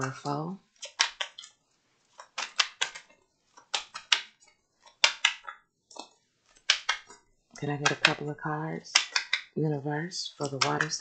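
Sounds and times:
cards being shuffled: 0.0s - 9.6s, 10.4s - 11.0s.

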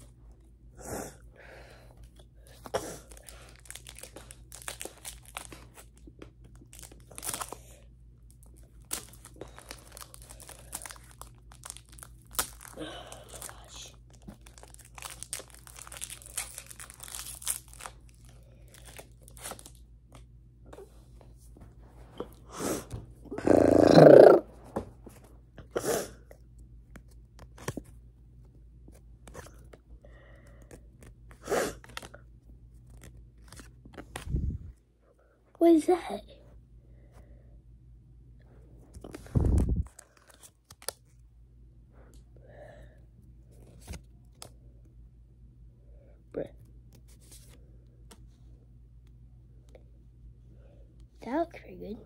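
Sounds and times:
rustling of cards and foil: 2.5s - 19.8s.

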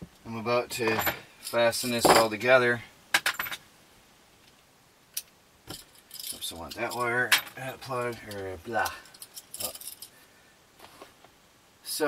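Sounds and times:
metallic clicks and clinks: 5.2s - 10.2s.

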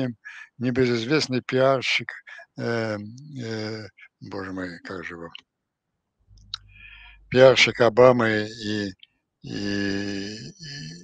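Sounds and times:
faint low noise: 0.0s - 5.4s, 6.3s - 11.0s
man speaking: 0.0s - 5.4s, 6.6s - 11.0s.

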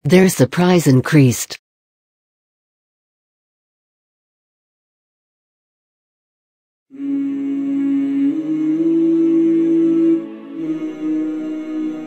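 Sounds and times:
person humming long notes: 6.9s - 12.0s.

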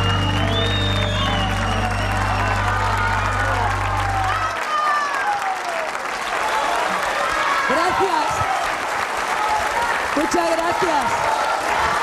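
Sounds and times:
low bass note: 0.0s - 4.5s
audience applauding: 0.0s - 12.0s.

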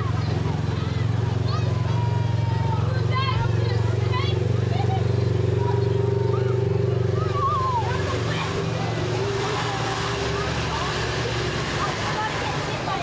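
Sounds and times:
scattered voices: 0.0s - 13.0s
vehicle engine rolling past: 0.0s - 13.0s
hiss from wet street: 7.9s - 13.0s.

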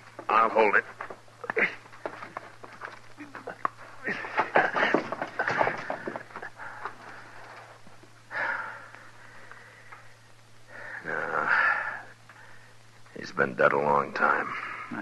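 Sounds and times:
low recording hum: 0.0s - 15.0s
rustling scraping and knocking: 1.9s - 8.0s.

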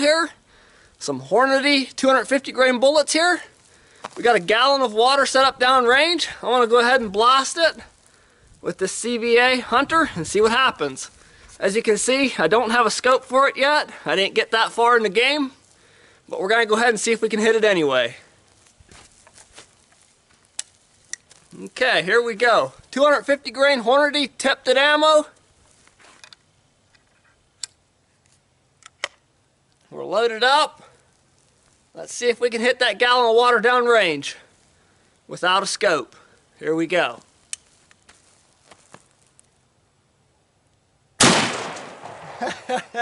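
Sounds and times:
rifle handling sounds: 26.0s - 29.3s.

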